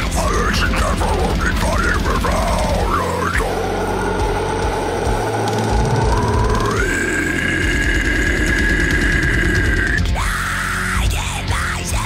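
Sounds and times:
distorted guitars: 0.0s - 12.0s
drums: 0.0s - 12.0s
metal music: 0.0s - 12.0s.

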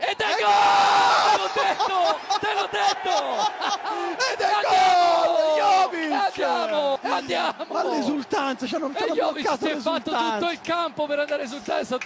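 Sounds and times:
commentator yelling: 0.0s - 11.9s
commentator laughing: 1.4s - 4.4s.

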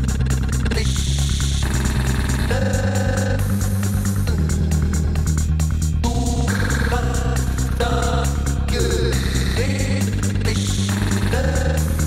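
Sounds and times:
techno with electronic beat: 0.0s - 12.0s.

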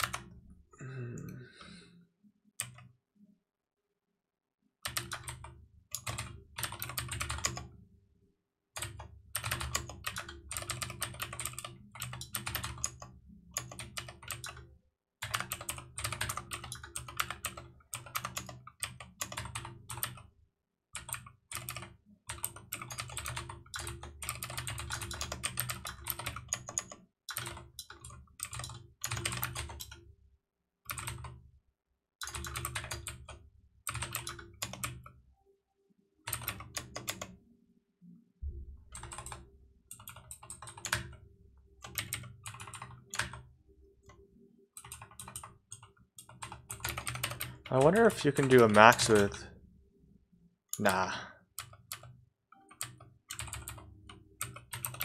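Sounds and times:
typing on computer keyboard: 0.0s - 0.4s, 4.8s - 7.8s, 8.8s - 20.3s, 21.0s - 30.0s, 30.9s - 31.4s, 32.2s - 35.1s, 36.2s - 37.4s, 38.9s - 41.2s, 41.8s - 44.2s, 44.8s - 49.4s, 50.8s - 55.0s.

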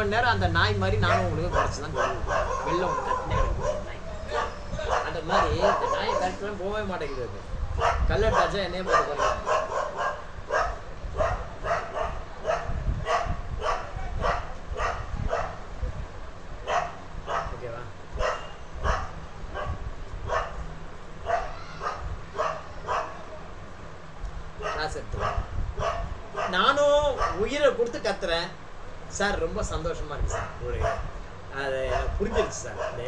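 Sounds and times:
dog barking: 1.0s - 6.4s, 7.8s - 15.6s, 16.6s - 17.6s, 18.2s - 20.6s, 21.2s - 23.2s, 24.6s - 27.5s, 30.3s - 31.1s, 31.8s - 33.0s.

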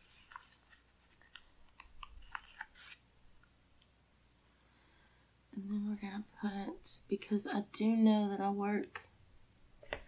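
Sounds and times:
paper crinkling: 0.0s - 3.0s.

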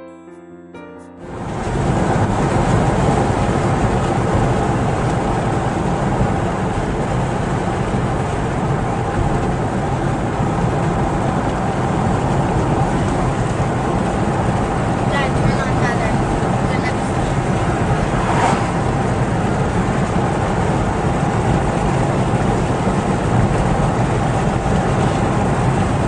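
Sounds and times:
car engine at highway speed: 1.3s - 26.0s
tyres on asphalt: 1.3s - 26.0s.

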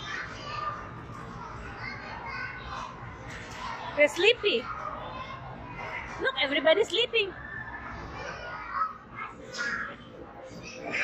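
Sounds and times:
faint children's voices: 0.0s - 11.0s.

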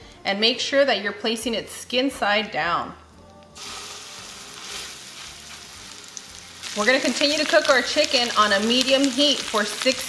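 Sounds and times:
chicken sizzling in a skillet: 3.5s - 10.0s.

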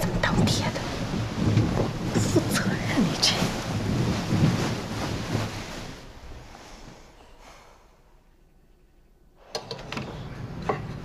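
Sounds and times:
steady rushing noise: 0.0s - 7.6s.

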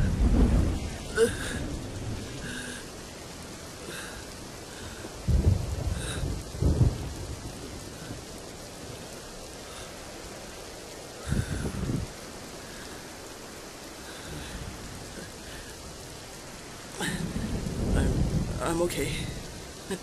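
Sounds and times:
thunder rumbling: 0.0s - 13.0s, 14.1s - 20.0s
steady rain: 0.0s - 20.0s.

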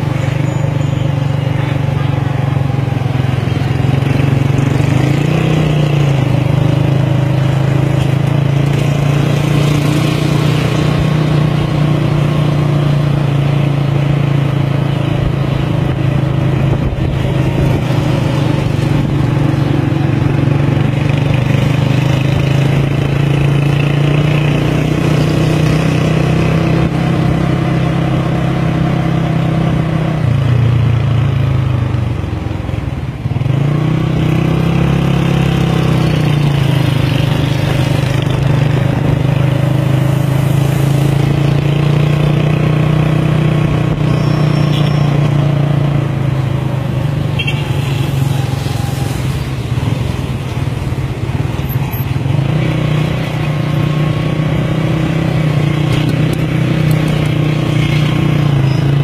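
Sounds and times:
scooter engine running: 0.0s - 59.0s.

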